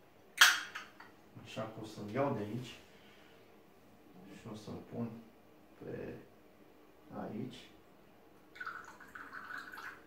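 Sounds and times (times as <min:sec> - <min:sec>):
syrup trickling into glass: 0:08.6 - 0:10.0.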